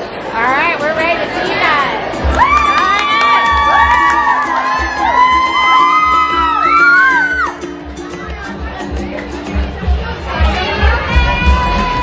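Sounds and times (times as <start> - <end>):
girls screaming and cheering: 2.2 - 7.8, 10.6 - 12.0.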